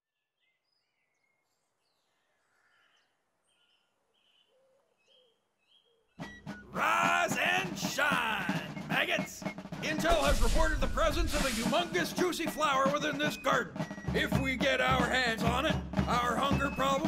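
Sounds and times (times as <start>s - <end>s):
bird chirps: 0.1s - 6.7s
man shouting: 6.7s - 11.1s.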